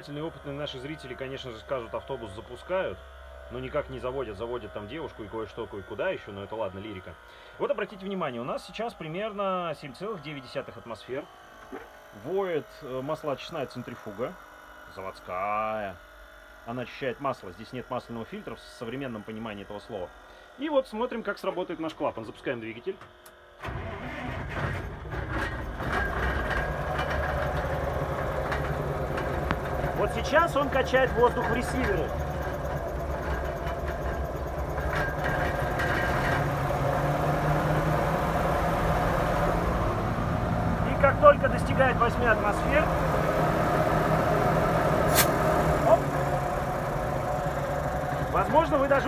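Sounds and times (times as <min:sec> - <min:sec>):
air compressor running: 0:00.0 - 0:49.0
bus engine starting and idling: 0:23.6 - 0:49.0
sharp puff of air: 0:45.0 - 0:45.4.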